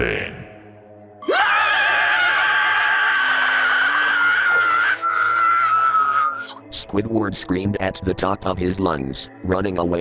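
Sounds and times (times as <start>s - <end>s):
cartoon character screaming: 1.3s - 6.6s.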